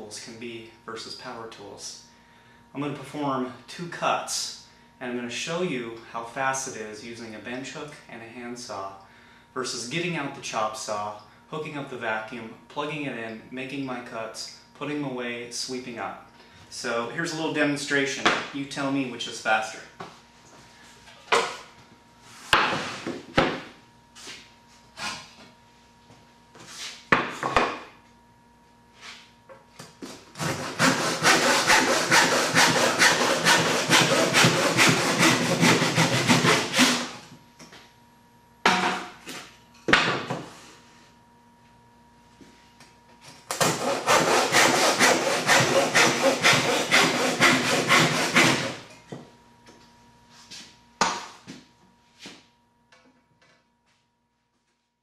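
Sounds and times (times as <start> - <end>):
handsaw cutting wood: 30.4 - 37.2, 43.6 - 48.8.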